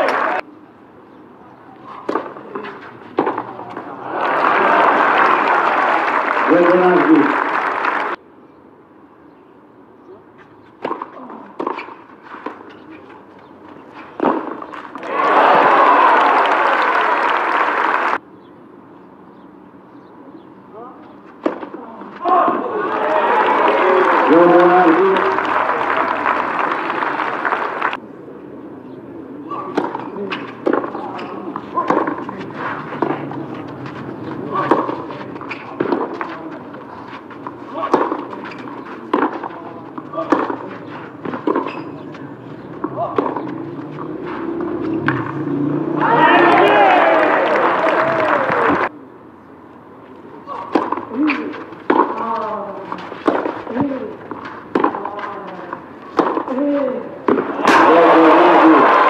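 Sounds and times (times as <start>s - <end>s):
crowd cheering and applause: 0.0s - 0.4s, 3.7s - 8.2s, 14.9s - 18.2s, 22.3s - 28.0s, 43.7s - 48.9s, 57.5s - 59.0s
racket hitting tennis ball: 1.8s - 4.0s, 10.7s - 15.6s, 21.3s - 22.7s, 29.5s - 46.7s, 50.4s - 58.4s.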